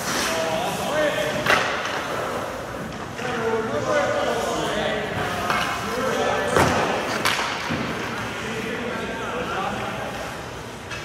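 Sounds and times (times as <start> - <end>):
hockey stick hitting puck on ice: 6.5 - 8.1.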